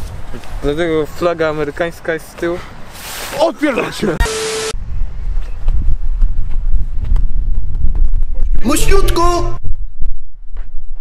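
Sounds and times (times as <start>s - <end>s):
wind buffeting microphone: 4.8s - 11.0s.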